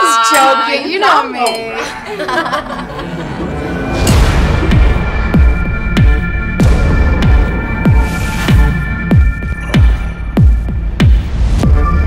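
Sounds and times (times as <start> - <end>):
electronic kick drum: 4.1 - 12.0.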